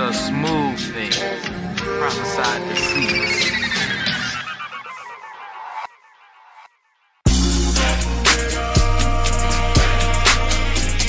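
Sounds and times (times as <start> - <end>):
stuttering electronic warble: 2.8 - 6.9.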